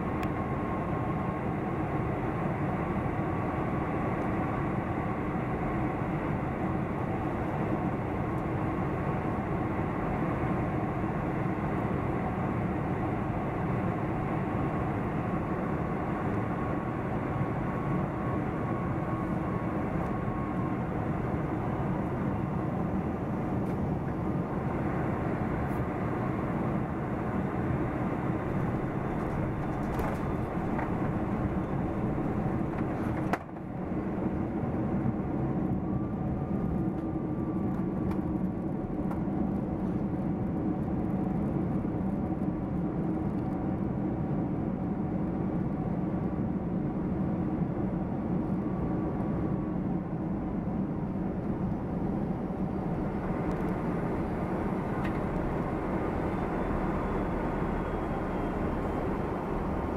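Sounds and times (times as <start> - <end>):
airplane cabin rumble: 0.0 - 59.9.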